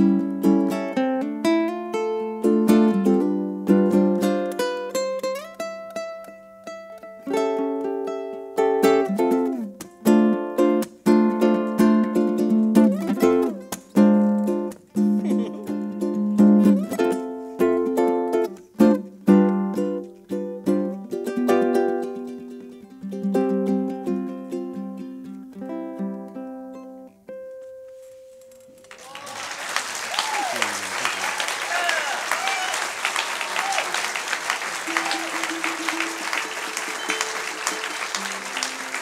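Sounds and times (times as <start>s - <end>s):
solo ukulele playing: 0.0s - 28.8s, 34.5s - 39.0s.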